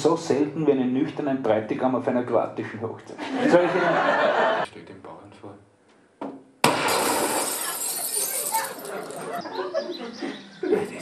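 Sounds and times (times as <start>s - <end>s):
loud crash: 6.6s - 8.8s.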